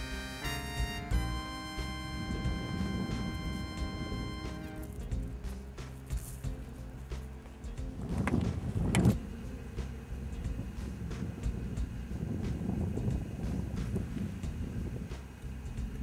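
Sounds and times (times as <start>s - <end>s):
wind rumbling on microphone: 0.0s - 16.0s
clothing and grass rustling: 1.0s - 16.0s.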